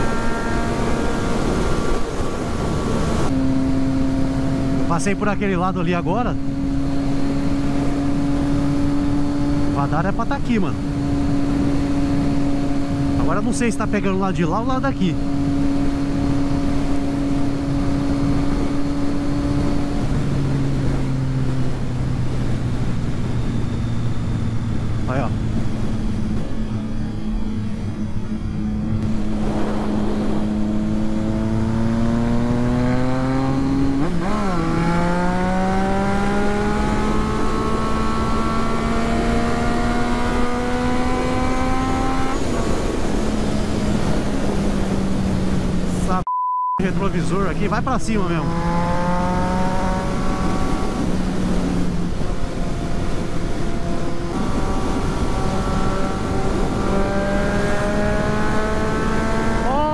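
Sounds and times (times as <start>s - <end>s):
wind noise: 15.1s - 46.2s, 47.8s - 59.7s.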